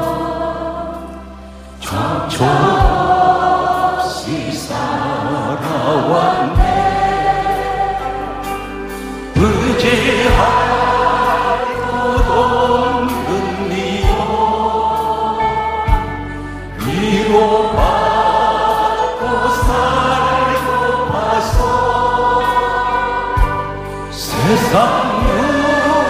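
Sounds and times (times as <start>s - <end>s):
man singing into a microphone: 5.2s - 6.8s, 9.4s - 14.6s, 16.8s - 18.0s, 24.1s - 26.0s
band accompaniment: 5.7s - 26.0s.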